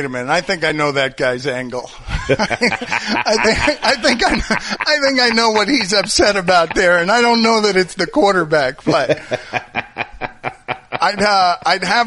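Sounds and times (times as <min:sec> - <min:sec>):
person snickering: 0:02.0 - 0:07.0, 0:08.9 - 0:11.3.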